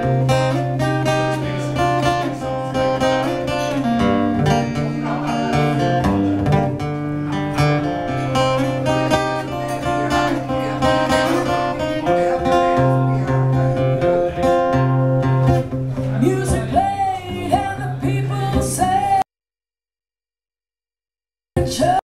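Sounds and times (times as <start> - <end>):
acoustic guitar strumming: 0.0 - 19.2.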